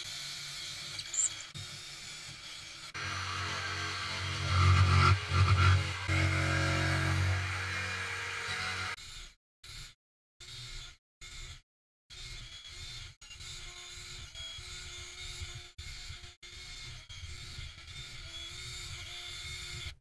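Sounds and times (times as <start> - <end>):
drill drilling plywood: 0.0 - 6.4
jigsaw cutting: 0.0 - 19.9.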